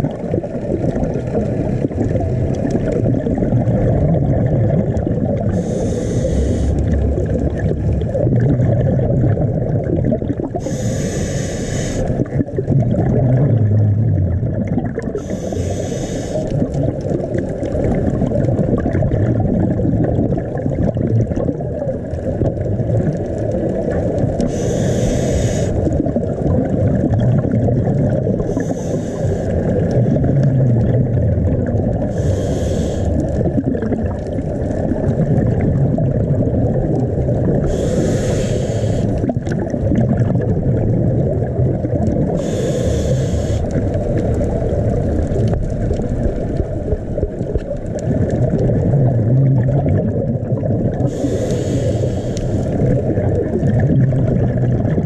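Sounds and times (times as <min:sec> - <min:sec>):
exhaled air bubbling: 0:00.0 - 0:55.0
underwater rush: 0:00.0 - 0:55.0
regulator inhalation hiss: 0:05.5 - 0:07.0, 0:10.6 - 0:12.2, 0:15.2 - 0:16.5, 0:24.5 - 0:25.9, 0:28.5 - 0:29.7, 0:32.1 - 0:33.2, 0:37.6 - 0:39.2, 0:42.4 - 0:43.8, 0:51.1 - 0:52.8.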